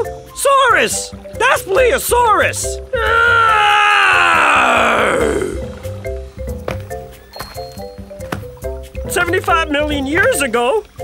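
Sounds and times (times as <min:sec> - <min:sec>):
light background music: 0:00.0 - 0:11.0
cartoon dinosaur roar: 0:03.0 - 0:05.7.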